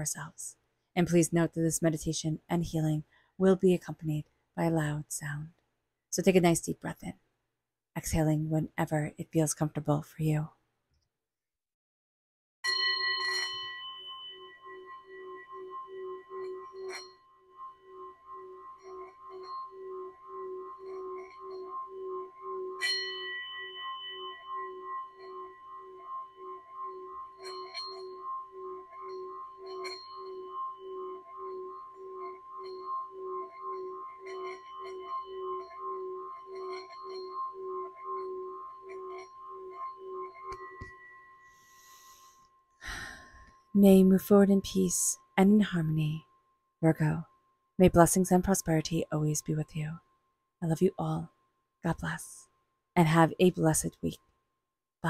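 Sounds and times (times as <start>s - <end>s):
singing bowl ringing hum: 12.6s - 47.6s
singing bowl struck with mallet: 12.7s - 41.5s.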